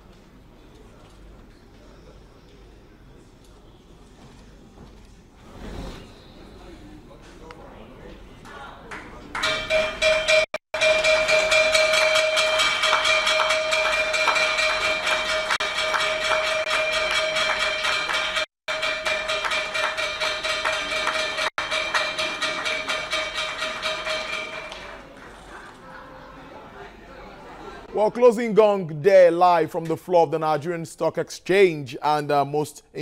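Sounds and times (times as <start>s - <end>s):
hand-clapping applause: 8.9s - 9.8s, 10.8s - 26.0s
gong ringing: 9.4s - 25.0s.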